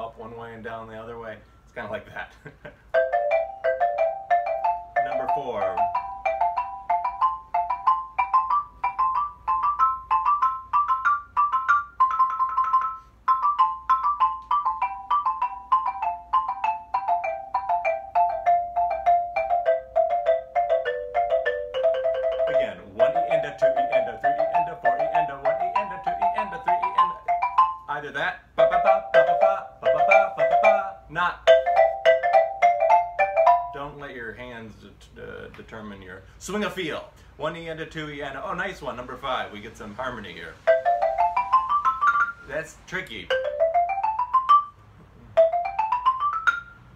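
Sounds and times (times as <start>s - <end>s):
xylophone played with mallets: 2.9s - 34.1s, 40.5s - 46.9s.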